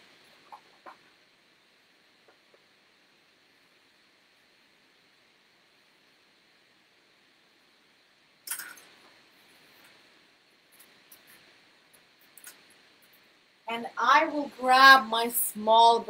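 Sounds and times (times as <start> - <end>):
faint room hiss: 0.0 - 16.0.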